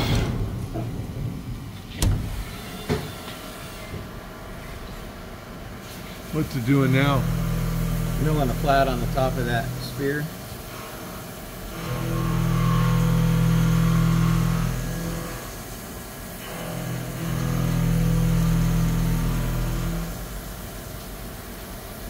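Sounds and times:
milling machine cutting: 6.4s - 10.4s, 16.4s - 20.2s.

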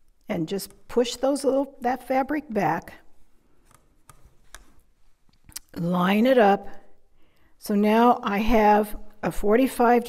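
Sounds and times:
ruler rubbing on fabric: 3.6s - 4.9s.

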